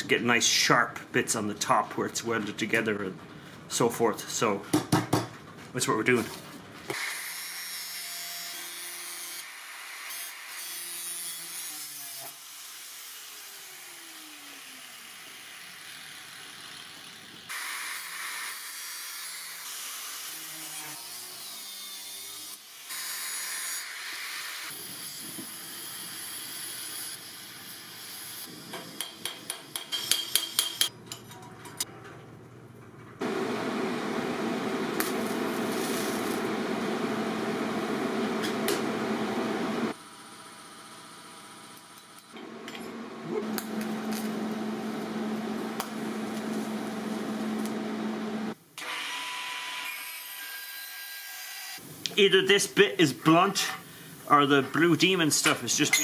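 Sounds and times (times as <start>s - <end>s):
angle grinder cutting metal: 6.9s - 29.2s
welding arc buzz: 6.9s - 30.8s, 33.2s - 50.0s.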